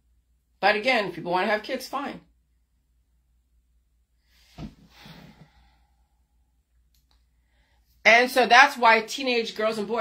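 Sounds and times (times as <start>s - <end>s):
faint click: 6.9s - 7.2s.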